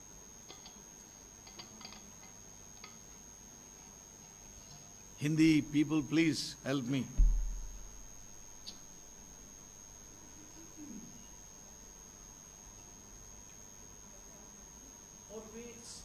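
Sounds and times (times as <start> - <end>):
faint high-pitched electronic whine: 0.0 - 16.0
thump on a microphone: 7.2 - 8.0.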